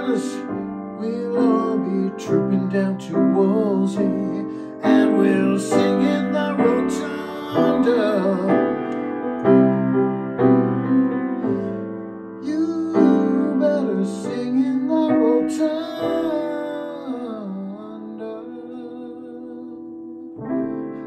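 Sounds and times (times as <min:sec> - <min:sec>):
man singing: 0:00.0 - 0:08.9, 0:12.4 - 0:21.0
piano chords: 0:00.0 - 0:21.0.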